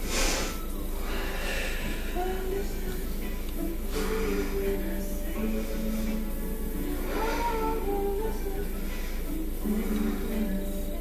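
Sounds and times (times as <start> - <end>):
sharp exhale through nose: 0.0 - 2.1
low background hum: 0.0 - 11.0.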